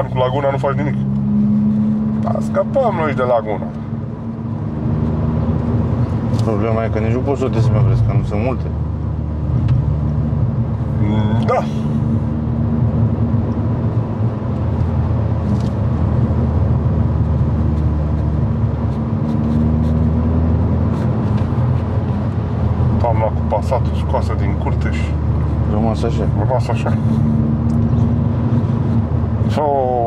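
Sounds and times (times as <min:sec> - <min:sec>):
car engine and road noise drone: 0:00.0 - 0:30.0.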